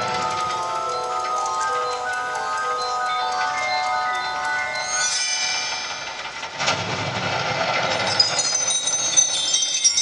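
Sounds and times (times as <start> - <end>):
high bell-like chimes: 0.0 - 6.6, 8.0 - 10.0.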